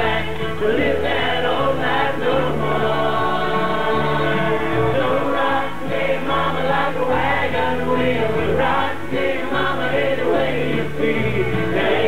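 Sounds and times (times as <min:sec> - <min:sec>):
bluegrass string band playing: 0:00.0 - 0:12.0
upright bass stepping between notes: 0:00.0 - 0:12.0.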